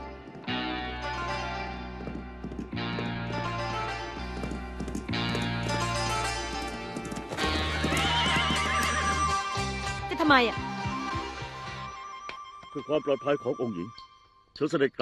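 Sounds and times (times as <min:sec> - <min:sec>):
music of sustained chords: 0:00.0 - 0:14.4
horse hooves clip-clopping on dirt: 0:01.4 - 0:09.4
horse whinnying: 0:07.3 - 0:09.7.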